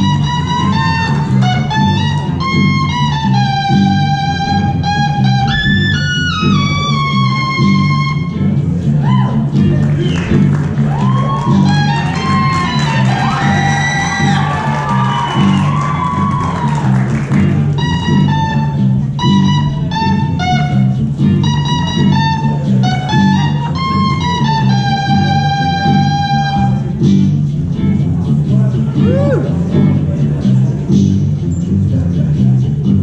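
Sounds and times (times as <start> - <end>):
repeating low accompaniment: 0.0 - 12.4
electric guitar melody: 0.0 - 32.0.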